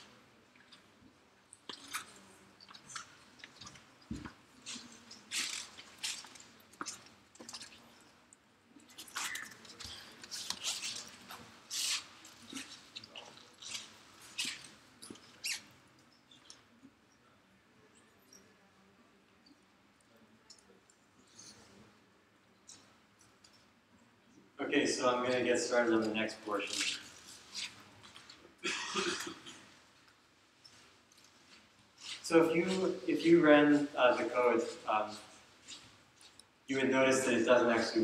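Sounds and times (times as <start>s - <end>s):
rustling and crinkling: 8.8s - 15.6s.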